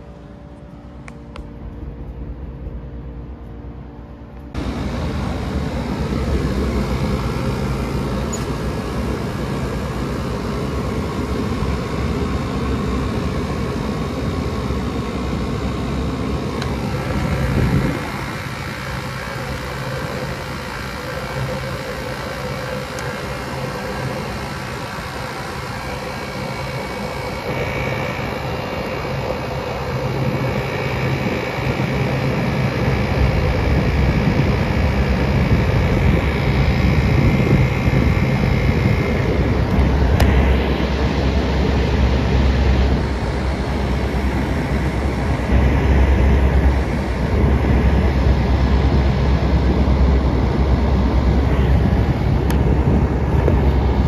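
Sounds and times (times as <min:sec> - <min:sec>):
air conditioner whirring: 0:00.0 - 0:54.0.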